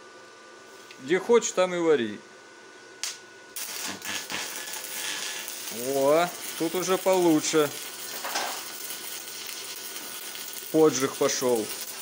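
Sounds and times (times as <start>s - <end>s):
welding arc hissing: 3.6s - 12.0s.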